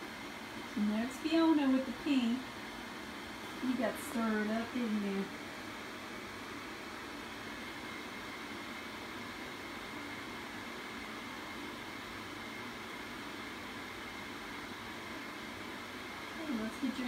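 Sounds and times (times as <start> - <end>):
faint high whine: 0.0 - 17.0
steady background hiss: 0.0 - 17.0.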